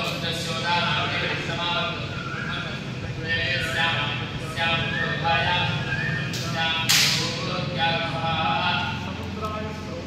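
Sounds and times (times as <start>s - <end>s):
man chanting mantras: 0.0s - 10.0s
sharp click: 6.3s - 7.3s.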